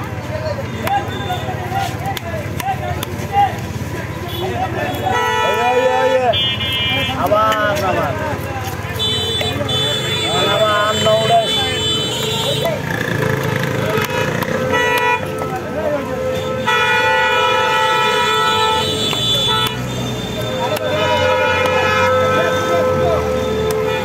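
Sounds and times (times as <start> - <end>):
voices: 0.0 - 24.0
vehicle horns honking: 0.6 - 1.9, 4.1 - 8.2, 8.8 - 24.0.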